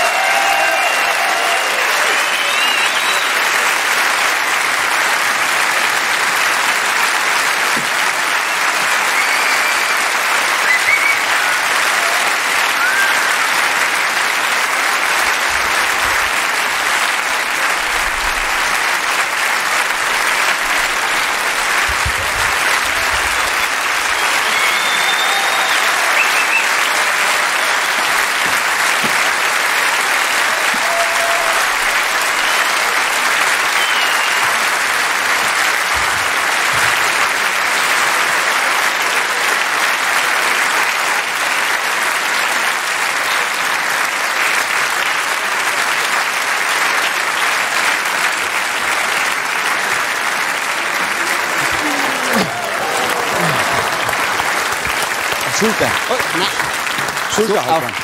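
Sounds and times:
large audience applauding: 0.0s - 58.0s.

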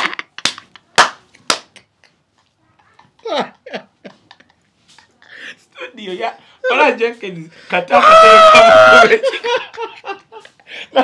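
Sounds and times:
hands clapping: 0.1s - 2.2s
person laughing: 2.8s - 5.4s.

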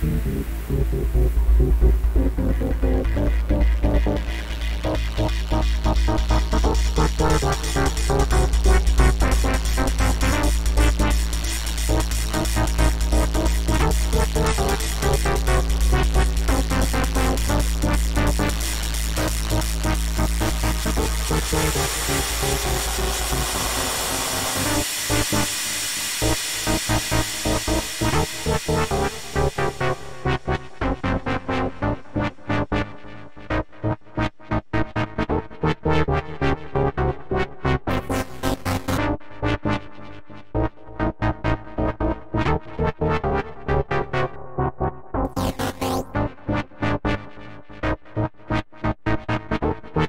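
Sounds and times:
short synthesizer notes: 0.0s - 30.8s
electronic dance music: 0.0s - 32.0s, 45.3s - 46.1s
deep bass: 0.0s - 32.8s.

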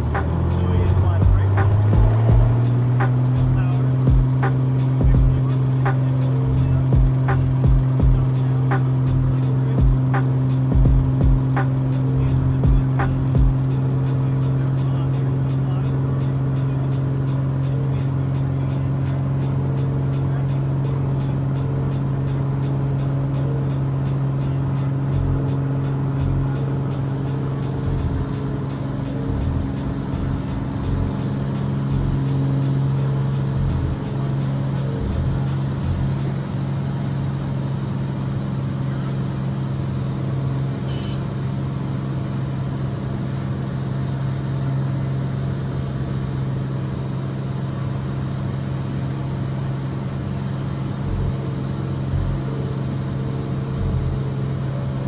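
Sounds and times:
light aircraft engine drone: 0.0s - 55.0s.

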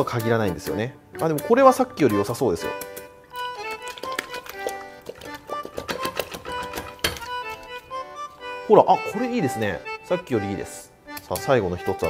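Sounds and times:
light background music: 0.0s - 12.0s
knife cracking sea urchin shell: 1.3s - 7.8s
urchin knocking in a bowl: 3.4s - 7.8s.

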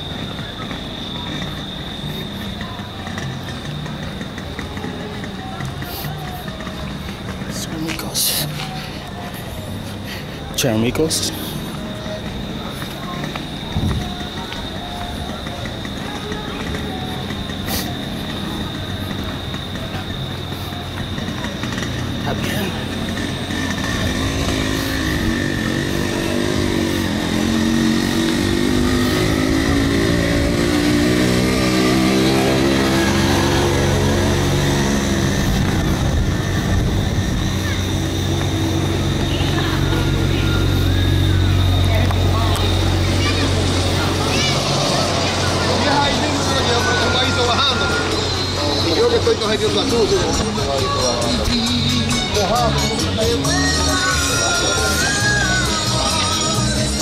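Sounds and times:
background voices: 0.0s - 57.0s
vehicle engine passing: 0.0s - 57.0s
low engine drone: 6.1s - 57.0s.

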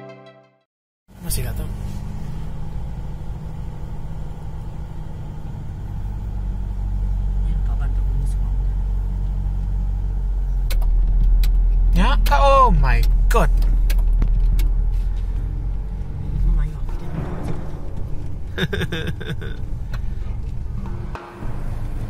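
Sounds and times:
car engine and road noise: 1.1s - 22.0s.

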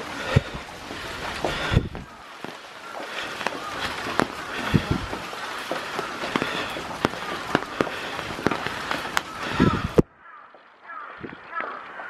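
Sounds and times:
rain hiss: 0.0s - 10.0s
raindrops tapping close by: 0.0s - 12.0s.

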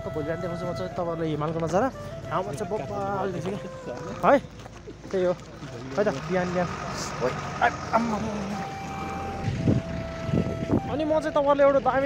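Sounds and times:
vehicle horn steady tone: 0.0s - 1.1s
street traffic: 0.0s - 12.0s.

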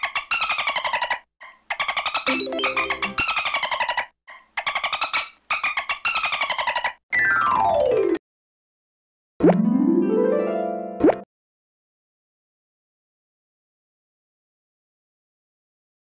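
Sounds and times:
buzzy synthesized chirping notes: 2.3s - 3.3s.

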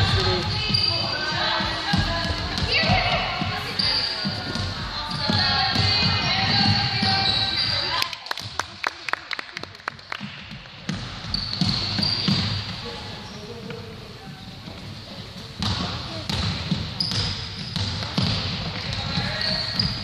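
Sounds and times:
basketball bouncing on hardwood: 1.4s - 7.4s, 10.2s - 12.8s, 15.6s - 20.0s.

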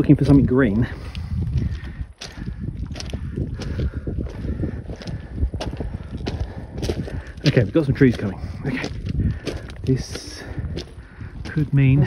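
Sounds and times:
footsteps on rocky trail: 0.0s - 12.0s.

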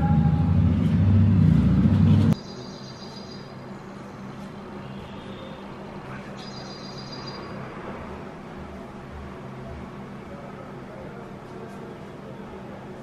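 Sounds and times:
loud low rumble: 0.0s - 2.4s.

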